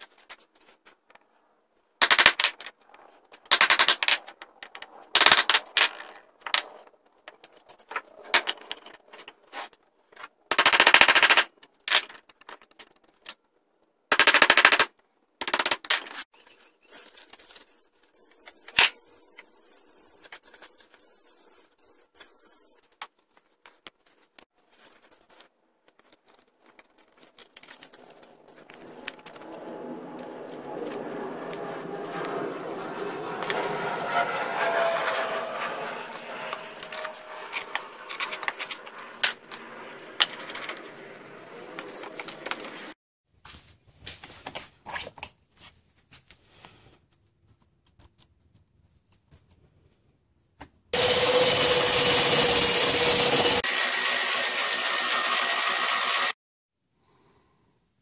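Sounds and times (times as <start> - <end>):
wood rubbing against sandpaper: 28.0 - 41.0
spindle sander whining: 28.4 - 42.9, 51.0 - 56.3.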